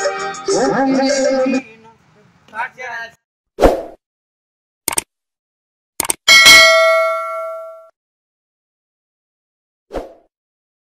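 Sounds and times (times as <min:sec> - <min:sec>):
quick mouse clicks: 0:04.9 - 0:05.1
notification bell ding: 0:06.3 - 0:07.9.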